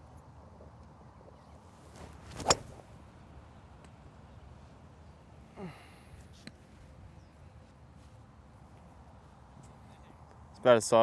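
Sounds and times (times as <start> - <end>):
golf club swing whoosh: 1.8 - 3.0
golf club striking ball: 2.0 - 2.9.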